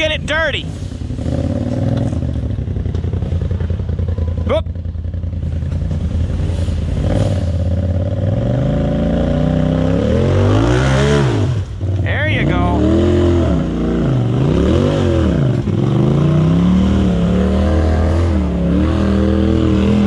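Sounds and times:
utv engine revving: 0.0s - 20.0s.

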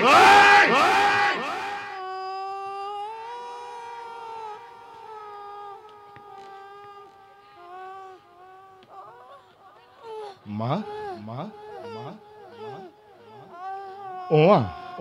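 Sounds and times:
echoing theatrical laughter: 0.0s - 2.0s.

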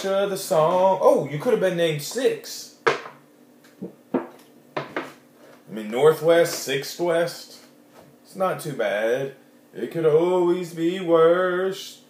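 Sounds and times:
plastic jug knocks: 3.8s - 5.1s.

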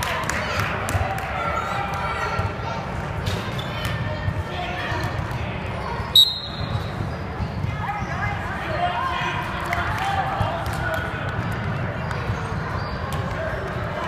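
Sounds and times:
spectators' voices: 0.0s - 14.0s
shoes squeaking on court: 3.2s - 4.0s
referee's whistle blast: 6.2s - 6.9s.

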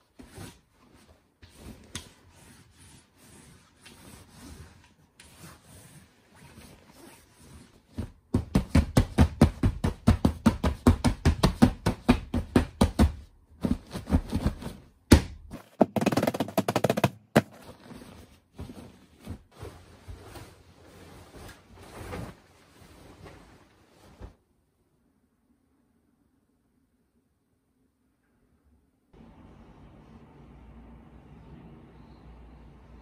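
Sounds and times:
rustling fabric: 0.0s - 24.5s.

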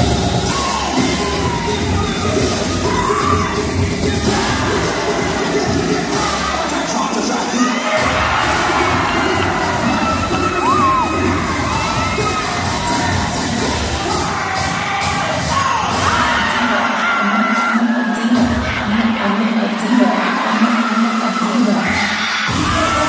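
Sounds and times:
crowd cheering and shouting: 0.0s - 23.0s
dance music with low beat: 0.0s - 23.0s.

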